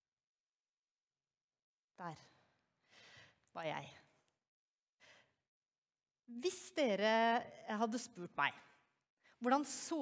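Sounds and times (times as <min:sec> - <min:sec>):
faint breath: 0:02.8 - 0:03.4.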